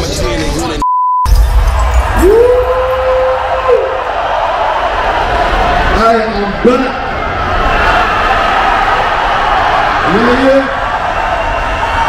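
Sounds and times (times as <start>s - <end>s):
outdoor crowd noise: 0.0s - 12.0s
censor beep: 0.8s - 1.4s.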